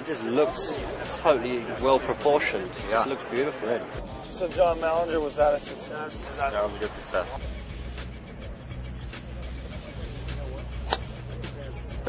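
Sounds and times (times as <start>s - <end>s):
background music: 0.0s - 12.0s
golf club striking ball: 10.8s - 11.2s.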